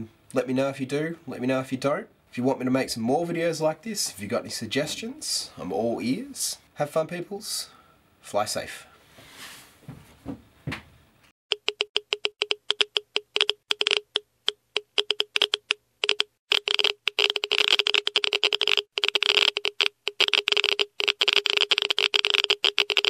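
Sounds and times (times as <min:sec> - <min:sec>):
sharp irregular clicks: 0:11.5 - 0:23.0.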